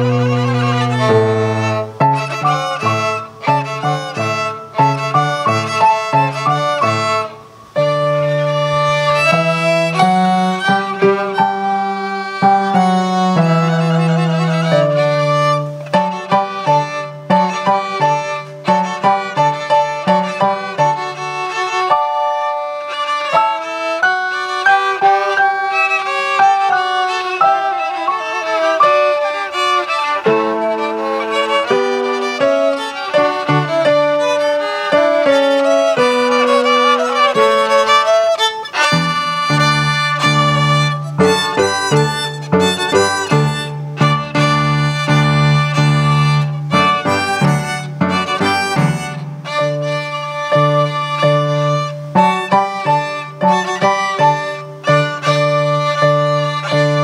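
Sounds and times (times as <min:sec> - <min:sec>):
violins playing melody: 0:00.0 - 0:57.0.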